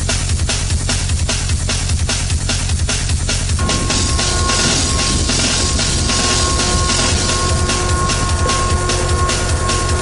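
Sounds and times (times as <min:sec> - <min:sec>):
high mechanical whine: 0:03.4 - 0:10.0
chairlift machinery running: 0:03.6 - 0:10.0.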